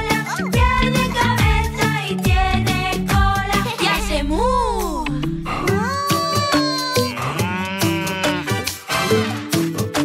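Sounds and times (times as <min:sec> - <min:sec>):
upbeat children's music: 0:00.0 - 0:10.0
cartoon cow mooing: 0:05.5 - 0:08.6.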